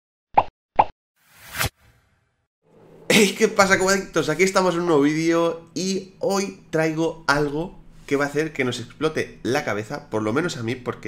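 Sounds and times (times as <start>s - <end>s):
rising whoosh: 2.7s - 5.0s.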